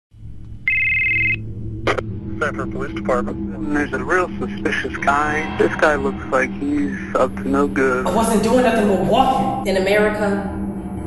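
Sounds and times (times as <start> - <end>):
low steady drone: 0.1 - 11.0
electronic telephone ring: 0.7 - 1.4.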